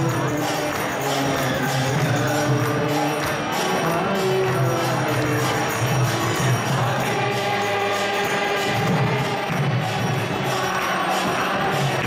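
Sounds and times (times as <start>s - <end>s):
jingling hand cymbals: 0.0s - 12.0s
many voices chanting: 0.0s - 12.0s
steady drum beat: 0.0s - 12.0s.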